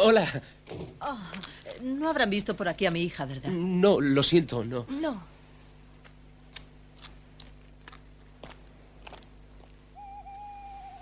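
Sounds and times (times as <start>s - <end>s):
low steady hum: 0.0s - 11.0s
owl hooting: 9.9s - 11.0s.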